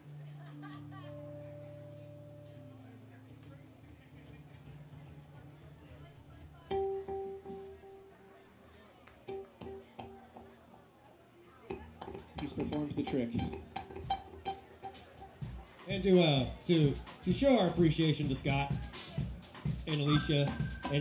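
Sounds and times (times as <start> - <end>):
electric guitar being tuned: 6.7 - 8.4, 9.2 - 10.8, 11.7 - 17.2.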